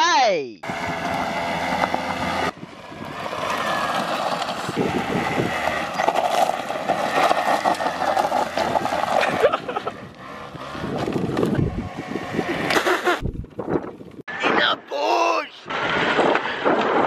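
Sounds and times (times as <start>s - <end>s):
moped engine revving: 0.6s - 13.6s
stones rattling under wheel: 3.3s - 9.5s.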